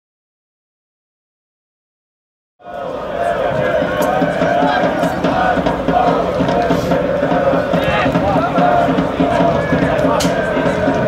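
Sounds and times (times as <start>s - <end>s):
crowd chanting and shouting: 2.6s - 11.0s.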